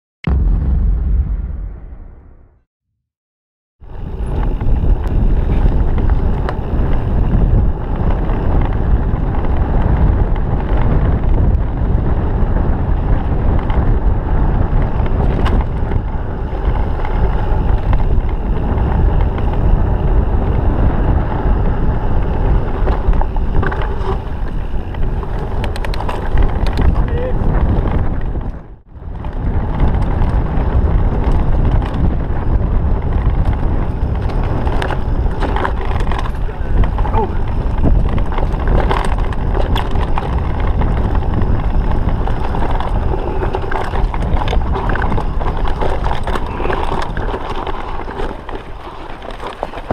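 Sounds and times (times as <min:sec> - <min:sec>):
bike rattling over rough ground: 0:03.8 - 0:49.9
wind on microphone: 0:03.8 - 0:49.9.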